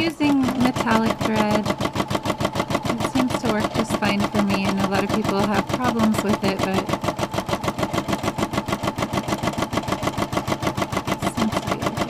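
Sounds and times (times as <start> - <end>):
embroidery machine stitching: 0.0 - 12.0.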